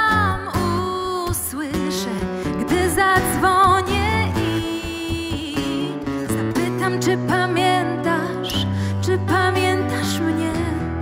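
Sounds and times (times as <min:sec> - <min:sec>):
acoustic guitar: 0:00.0 - 0:11.0
woman singing a pop ballad: 0:00.0 - 0:11.0.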